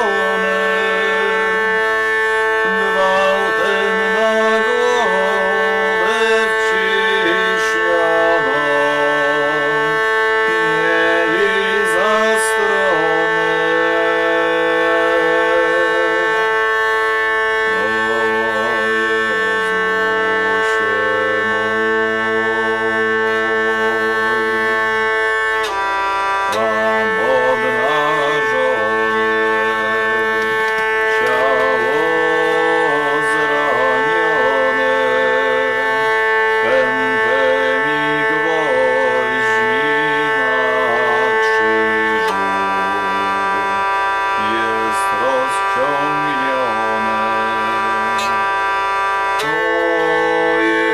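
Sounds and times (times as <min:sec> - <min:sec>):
hurdy-gurdy playing: 0:00.0 - 0:50.9.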